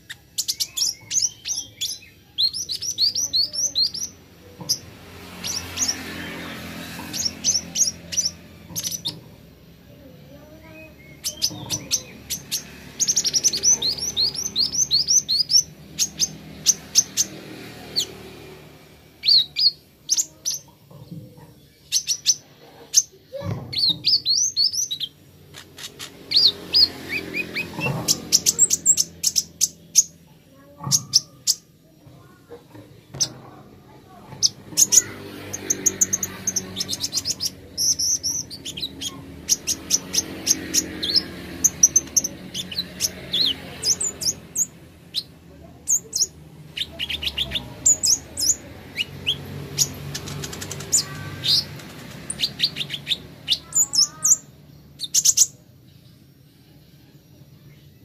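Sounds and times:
sunbird chirping: 0.0 - 20.8, 21.5 - 58.0.

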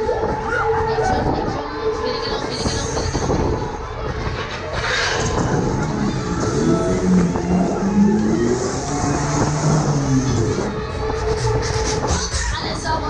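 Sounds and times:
ride machinery rumbling: 0.0 - 13.0
loud music over speakers: 2.2 - 13.0.

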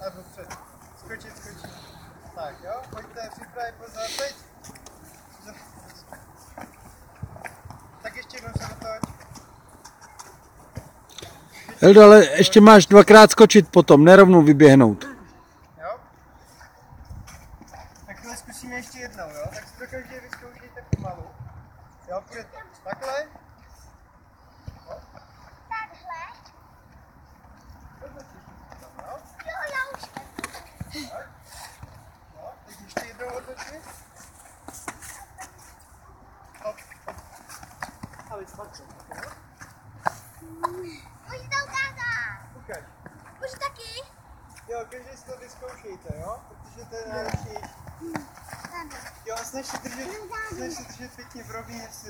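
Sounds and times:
children's footsteps on rubber track: 2.4 - 15.0, 24.6 - 52.0.

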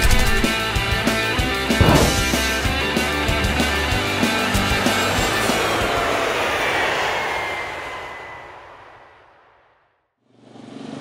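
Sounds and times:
rock music: 0.0 - 6.0
jet aircraft passing over: 5.1 - 9.2.

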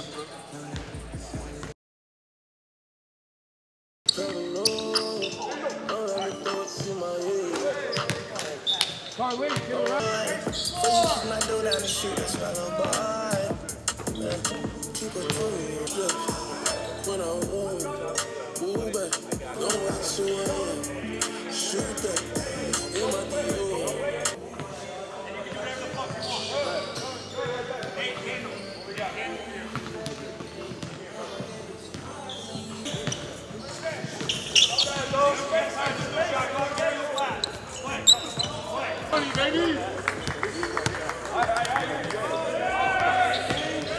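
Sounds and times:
sneaker squeak: 0.0 - 0.4, 4.1 - 6.9, 7.5 - 15.6, 25.5 - 38.8, 43.2 - 43.9
background voices: 4.1 - 43.9
basketballs bouncing on gym floor: 8.0 - 9.0, 29.7 - 31.0.

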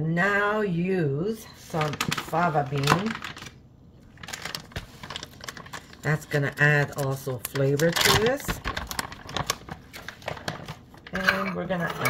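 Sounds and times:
kitchen utensils clicking and tapping: 11.1 - 12.0.

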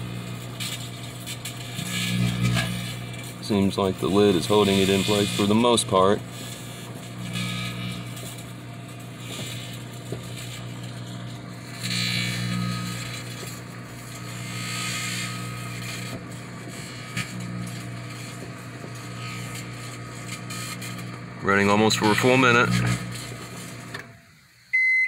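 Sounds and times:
sharp crackles of arcing: 0.0 - 24.2
hiss of burning: 0.0 - 24.7
microwave oven hum and fan: 0.0 - 25.0.

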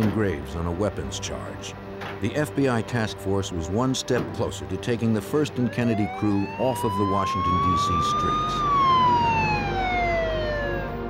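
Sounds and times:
police siren wailing: 5.2 - 11.0.

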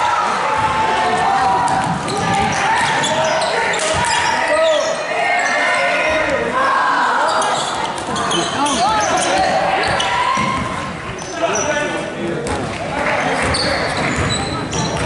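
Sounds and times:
spectators' voices: 0.0 - 15.0
basketball bouncing on hardwood floor: 13.4 - 15.0.

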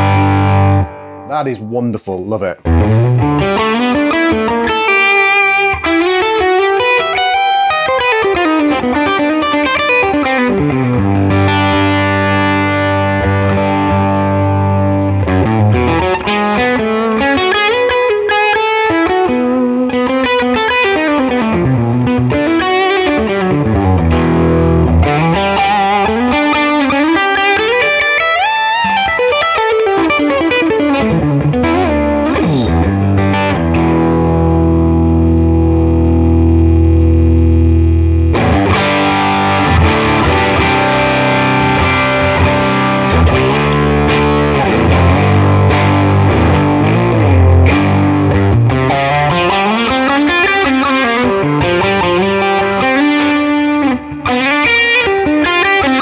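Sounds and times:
electric guitar chord ringing: 0.0 - 1.4, 2.6 - 56.0
overdriven electric guitar runs: 2.7 - 56.0.

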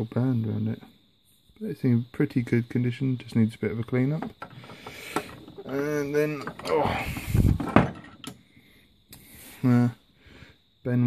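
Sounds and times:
pipe handling rumble: 4.3 - 8.3.

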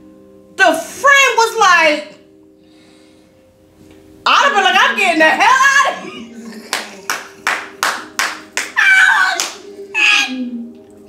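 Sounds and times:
woman laughing: 5.8 - 7.4
hands clapping: 6.6 - 9.7.

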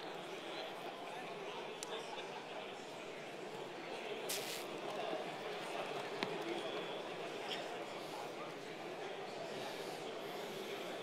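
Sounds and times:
murmur of many people talking: 0.0 - 11.0
short high hiss: 4.3 - 4.7.

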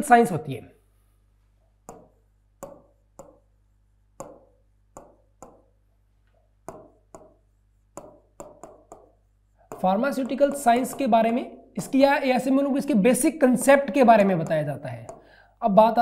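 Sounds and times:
stylus tapping on glass: 1.8 - 3.5, 4.2 - 5.8, 6.6 - 11.2.

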